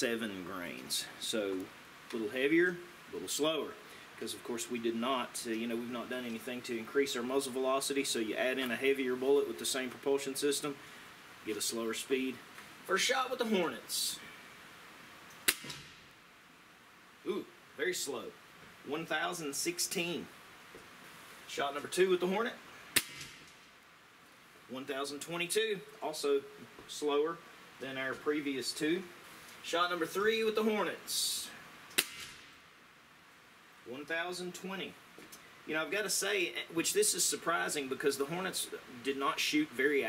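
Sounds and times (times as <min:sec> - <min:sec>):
air rifle shot with ringing tail: 0:15.5 - 0:16.1, 0:23.0 - 0:23.5, 0:32.0 - 0:32.5.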